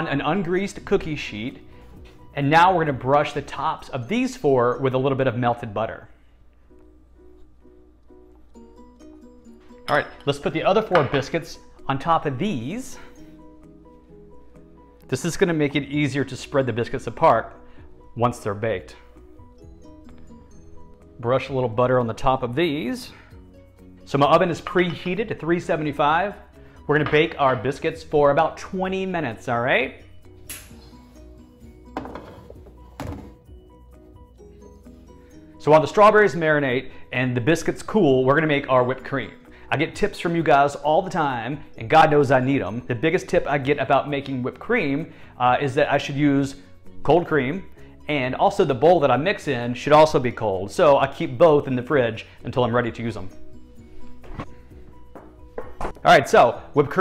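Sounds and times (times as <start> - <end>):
soft background music: 0.0 - 57.0
refrigerator door thunks: 33.0 - 33.4.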